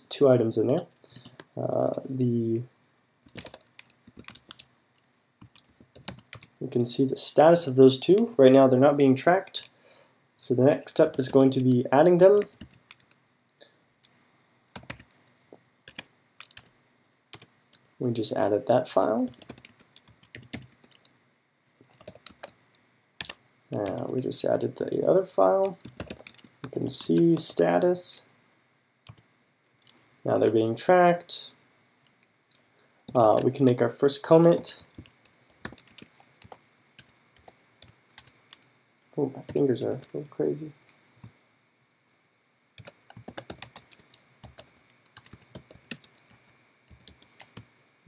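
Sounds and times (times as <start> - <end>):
computer keyboard typing: 0.7 - 2.2, 3.2 - 6.5, 11.0 - 13.2, 14.0 - 16.7, 17.3 - 18.0, 19.3 - 21.1, 21.8 - 24.2, 25.6 - 27.6, 29.1 - 30.7, 33.1 - 33.8, 34.4 - 40.2, 42.8 - 47.7
keyboard keystrokes: 3.2 - 6.5, 33.1 - 33.6, 34.8 - 38.6, 42.8 - 47.6.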